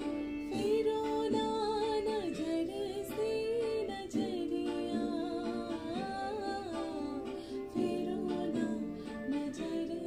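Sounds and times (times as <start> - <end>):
woman singing wordless melody: 0.0 - 10.0.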